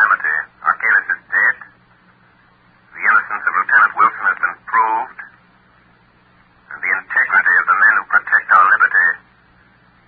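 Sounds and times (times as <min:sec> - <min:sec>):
radio drama voices: 0:00.0 - 0:01.8, 0:02.8 - 0:05.4, 0:06.6 - 0:09.3
faint low hum: 0:00.0 - 0:10.0.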